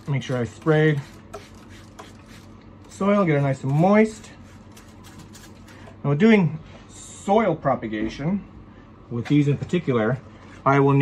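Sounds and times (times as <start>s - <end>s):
spray bottle squirts: 0.9s - 2.6s.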